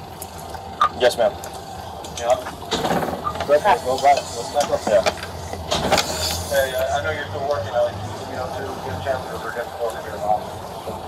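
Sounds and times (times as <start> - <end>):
people talking: 0.8 - 1.4, 2.1 - 2.5, 3.3 - 5.3, 6.2 - 10.6.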